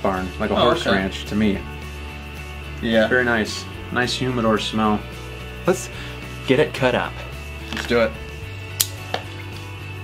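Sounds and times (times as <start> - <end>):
cigar cutter snipping: 8.7 - 9.3.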